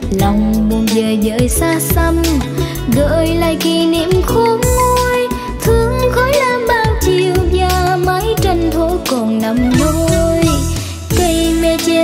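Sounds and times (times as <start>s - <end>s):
bass line: 0.0s - 12.0s
girl singing into a microphone: 0.0s - 12.0s
steady drum beat: 6.8s - 12.0s.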